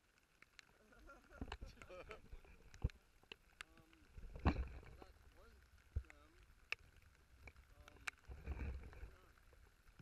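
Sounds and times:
raindrops ticking on camera: 0.0s - 10.0s.

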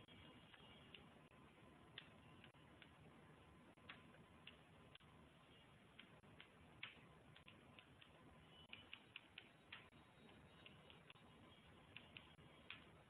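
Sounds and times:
keyboard keys clicking: 5.9s - 13.0s.

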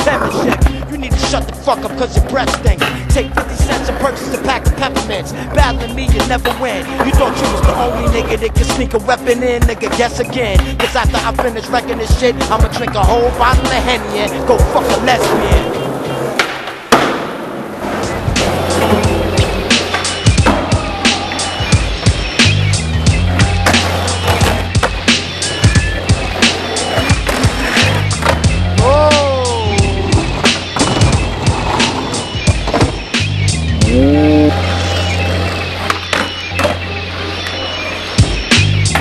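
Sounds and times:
music with bass beat: 0.0s - 15.7s, 18.2s - 35.2s, 38.2s - 39.0s
skateboard clacks: 0.0s - 29.2s, 35.1s - 39.0s
skateboard wheels rolling on concrete: 0.0s - 39.0s.

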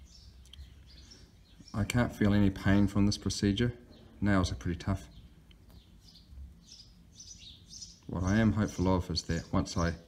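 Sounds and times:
faint bird chirps: 0.0s - 2.3s.

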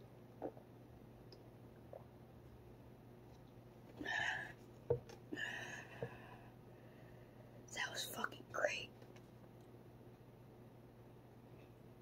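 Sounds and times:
faint low hum: 0.0s - 12.0s
person whispering: 7.7s - 8.9s.

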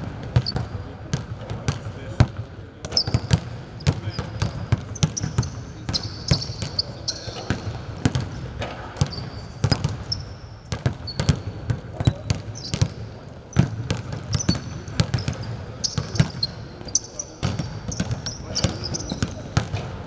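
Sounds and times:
basketballs bouncing on hardwood: 0.0s - 20.0s
sneaker squeaks: 0.3s - 0.8s, 2.8s - 20.0s.

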